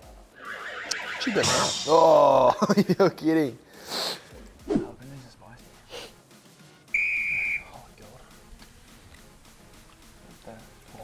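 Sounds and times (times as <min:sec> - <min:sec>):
high steady whistle tone: 0:06.9 - 0:07.9.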